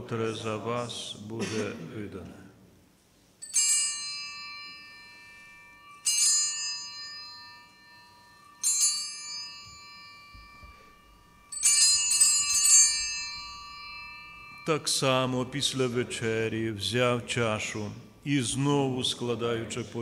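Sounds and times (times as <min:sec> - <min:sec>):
altar bell ringing: 0:03.4 - 0:19.2
person speaking: 0:14.6 - 0:20.0.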